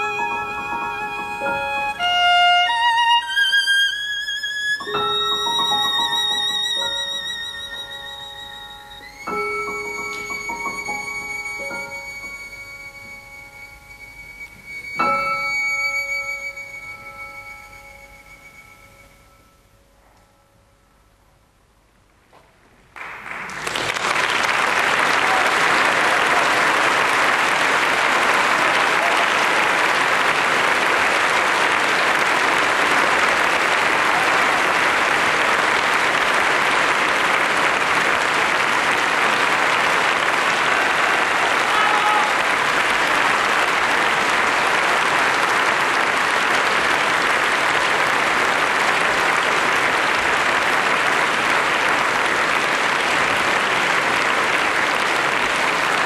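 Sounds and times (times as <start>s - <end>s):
audience applauding: 0.0s - 16.8s, 22.9s - 56.0s.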